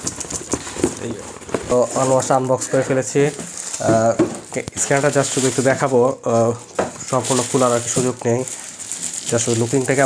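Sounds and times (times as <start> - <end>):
foam packing and plastic bag rustling: 0.0 - 10.0
man speaking: 1.0 - 8.5, 9.3 - 10.0.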